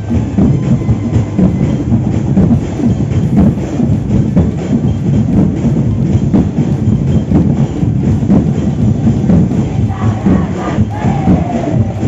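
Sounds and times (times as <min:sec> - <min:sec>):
crowd noise: 0:00.0 - 0:12.0
parade music with drumbeat: 0:00.0 - 0:12.0.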